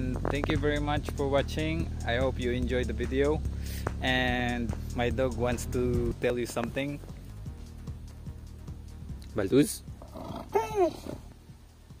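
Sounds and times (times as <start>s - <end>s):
faint background music: 0.0s - 12.0s
dog woo-woo vocalization: 10.2s - 11.3s.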